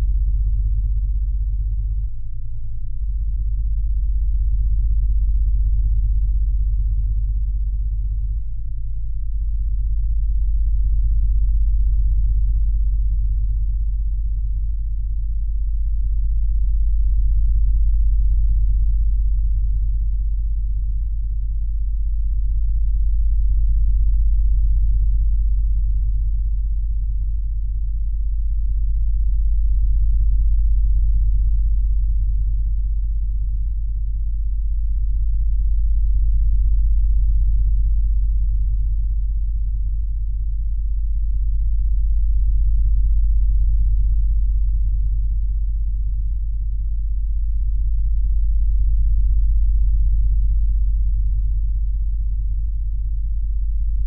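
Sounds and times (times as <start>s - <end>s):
deep steady pure-tone hum: 0.0s - 54.0s.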